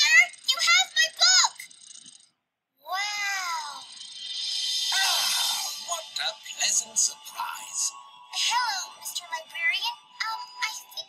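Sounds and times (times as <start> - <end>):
cartoon music with sparkle: 3.0 - 11.0.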